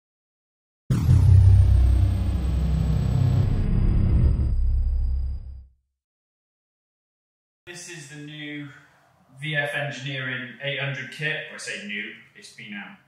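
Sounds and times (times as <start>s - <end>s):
high tone sliding downward: 0.9s - 5.6s
deep rumble sound effect: 0.9s - 5.7s.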